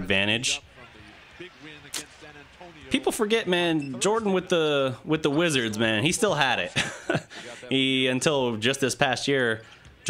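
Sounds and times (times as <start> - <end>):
sports commentary: 0.0 - 10.0.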